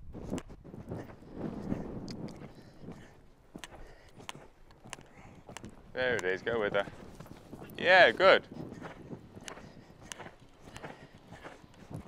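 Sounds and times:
horse hoofbeats on sand: 0.0 - 12.0
sharp irregular clicks: 2.0 - 7.1, 9.4 - 12.0.

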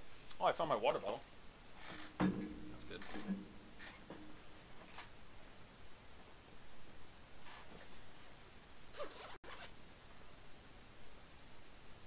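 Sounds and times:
zip-like rasp of handling: 7.4 - 8.1, 8.9 - 9.8.

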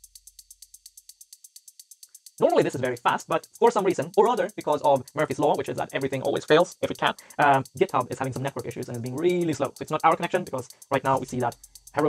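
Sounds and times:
rapid even ticking: 0.0 - 12.0.

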